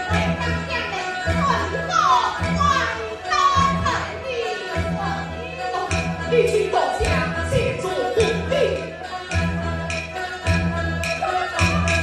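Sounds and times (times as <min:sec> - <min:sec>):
low steady band accompaniment: 0:01.3 - 0:12.0.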